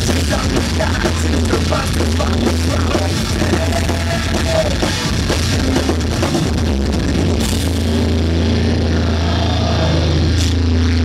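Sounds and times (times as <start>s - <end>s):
rock band holding low chord: 0.0s - 11.0s.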